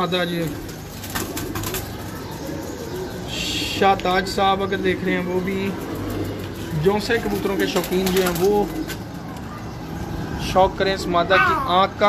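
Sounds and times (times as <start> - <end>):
pigeons cooing: 0.0 - 10.4.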